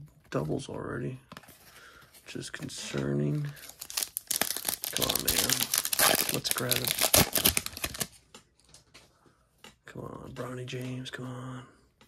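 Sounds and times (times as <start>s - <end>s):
card pack wrapper tearing: 3.5s - 8.2s.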